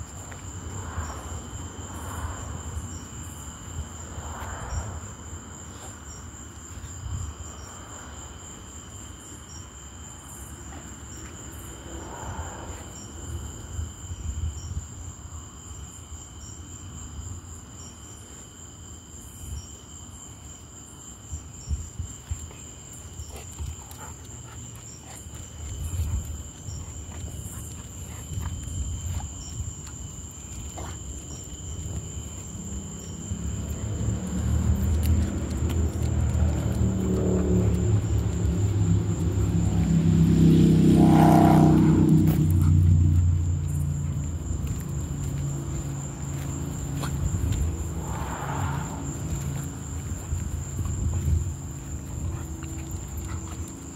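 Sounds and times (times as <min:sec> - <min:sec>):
crickets trilling: 0:00.0 - 0:53.9.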